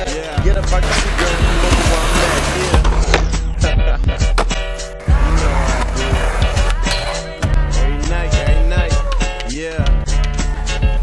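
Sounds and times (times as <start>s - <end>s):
skateboard wheels rolling on concrete: 0.0s - 7.5s
background music: 0.0s - 11.0s.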